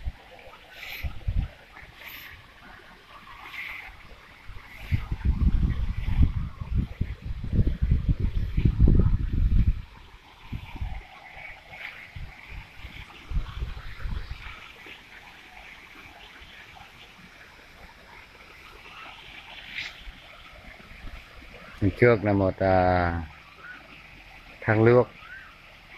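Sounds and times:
wind buffeting microphone: 0:00.0 - 0:02.6, 0:03.3 - 0:14.8
fountain water wash: 0:00.0 - 0:25.9.

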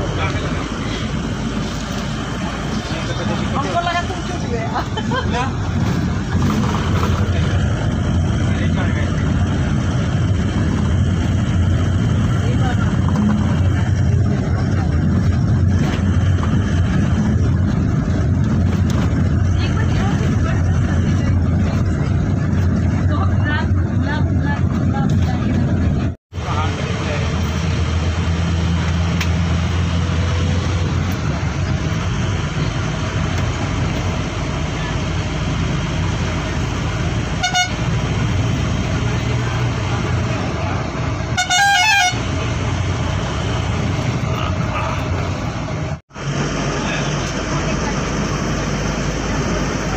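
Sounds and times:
bus engine and road rumble: 0:00.0 - 0:49.9
vehicle horn honking: 0:37.4 - 0:37.9, 0:41.3 - 0:42.3.

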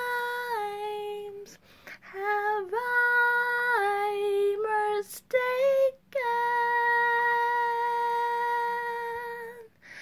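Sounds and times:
woman singing unaccompanied: 0:00.0 - 0:10.0.

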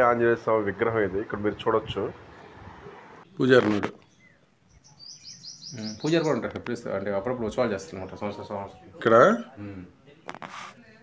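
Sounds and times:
small bird chirping: 0:04.0 - 0:06.9.

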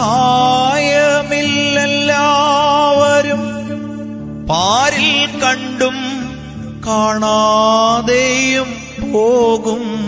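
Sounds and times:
keyboard melody: 0:00.0 - 0:10.0.

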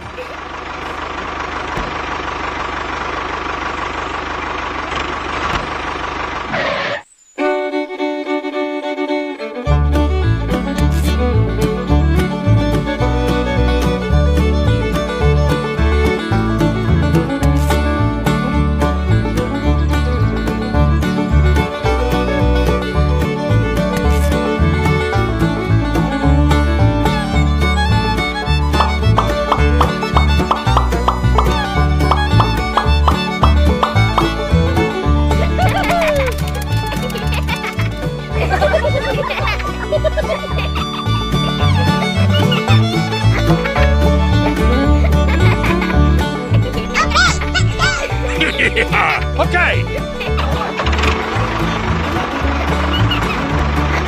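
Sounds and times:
bluegrass fiddle and banjo tune: 0:00.0 - 0:04.3, 0:07.4 - 0:54.0.

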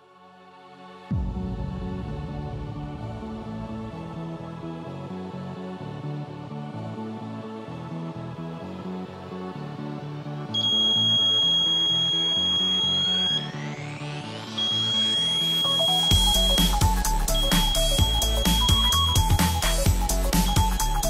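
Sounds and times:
background music with beat: 0:01.0 - 0:21.0
piezo buzzer high-pitched tone: 0:10.6 - 0:21.0.

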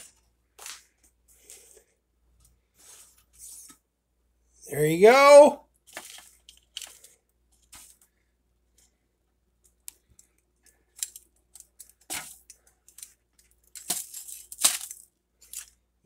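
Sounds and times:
scrapes and rustles: 0:00.0 - 0:03.8.

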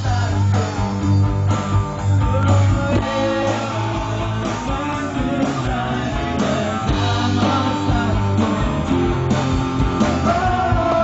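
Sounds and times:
live rock band instrumental: 0:00.0 - 0:11.0.

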